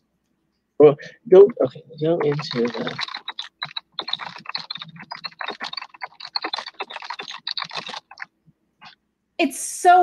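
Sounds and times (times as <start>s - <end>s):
rapid keyboard typing: 1.3s - 9.0s.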